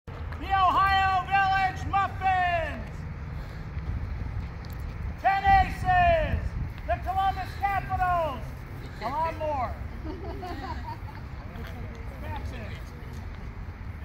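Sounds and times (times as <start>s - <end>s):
person shouting long calls: 0.4s - 2.8s, 5.2s - 9.8s.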